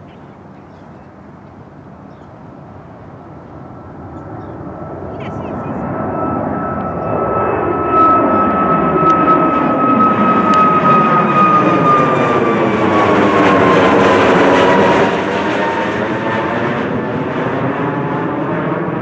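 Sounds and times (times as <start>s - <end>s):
high fan whine: 0.0s - 19.0s
jet climbing overhead: 0.0s - 19.0s.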